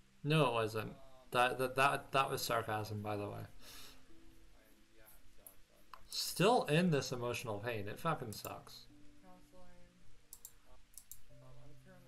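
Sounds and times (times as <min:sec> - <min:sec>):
faint steady low tones: 0:00.0 - 0:12.0.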